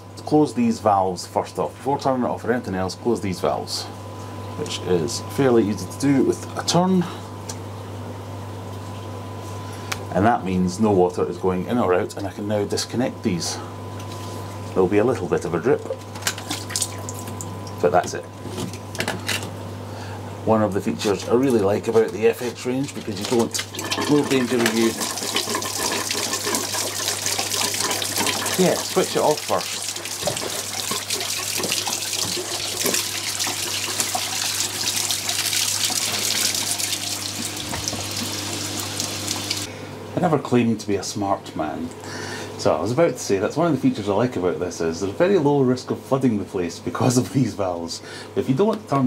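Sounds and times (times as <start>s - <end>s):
filter humming: 2.2s - 40.1s
water dripping and splashing: 16.4s - 17.8s, 23.0s - 39.7s.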